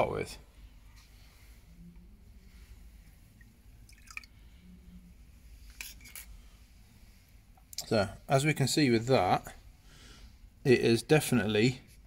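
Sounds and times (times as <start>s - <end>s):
faint liquid drips: 2.5s - 4.9s.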